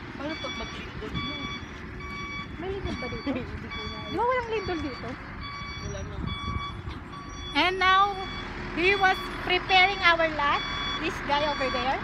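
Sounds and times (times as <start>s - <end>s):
reversing alarm beeping: 0.2s - 12.0s.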